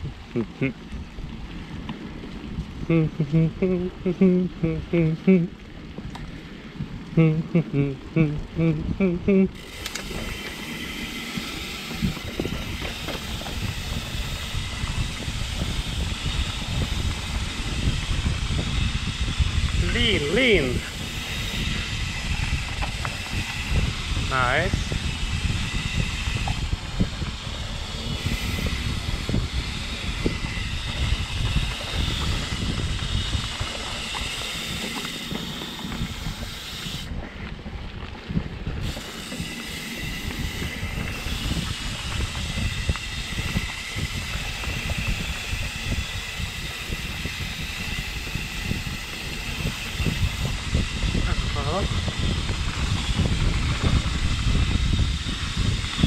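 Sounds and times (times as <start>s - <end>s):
wind buffeting microphone: 0.0s - 56.0s
tyres rumbling on dirt: 9.5s - 56.0s
bike knocks and rattles: 9.6s - 19.8s.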